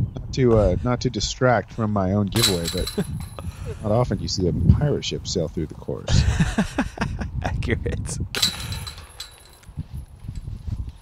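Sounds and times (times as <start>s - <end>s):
disc hitting metal chains: 2.4s - 3.5s, 8.4s - 9.7s.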